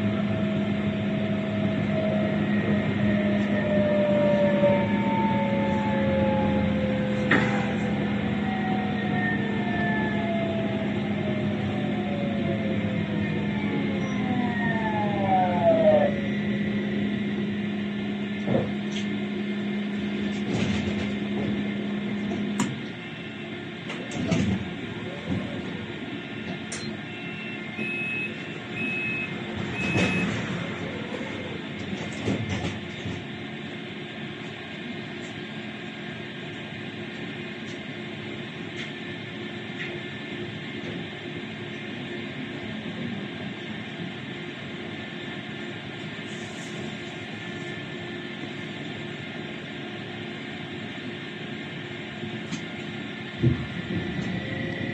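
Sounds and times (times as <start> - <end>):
tram motors whining down: 0.0 - 34.9, 47.2 - 54.9
short high beeps: 27.2 - 30.2.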